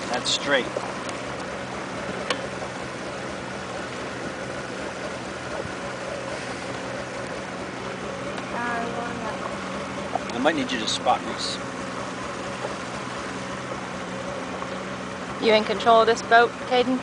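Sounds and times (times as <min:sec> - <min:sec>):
motorboat engine humming: 0:00.0 - 0:17.0.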